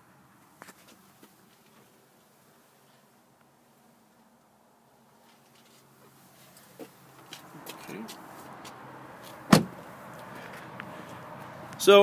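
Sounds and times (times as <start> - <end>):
car door shutting thud: 9.5 - 9.8.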